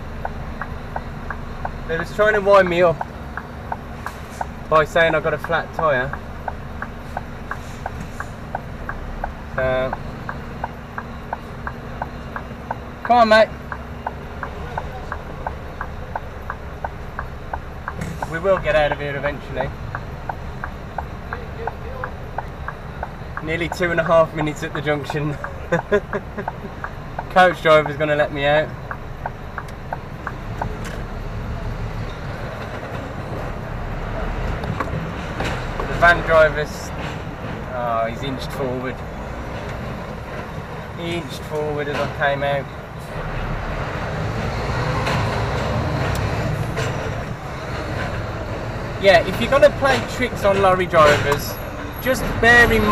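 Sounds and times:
turn signal ticking: 0:00.0 - 0:43.2, 0:43.9 - 0:52.9
diesel engine idling: 0:00.0 - 0:52.9
faint cab clicks: 0:00.2 - 0:31.1.

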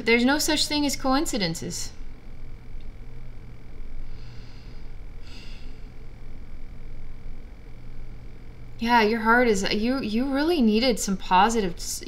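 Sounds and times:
steady low hum: 0:00.0 - 0:12.0
woman breathing softly: 0:04.0 - 0:06.0.

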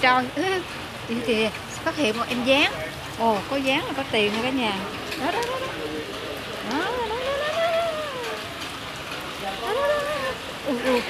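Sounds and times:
woman's wordless voice: 0:00.0 - 0:05.8, 0:06.6 - 0:08.8, 0:09.6 - 0:11.0
hiss of rain and water: 0:00.0 - 0:11.0.

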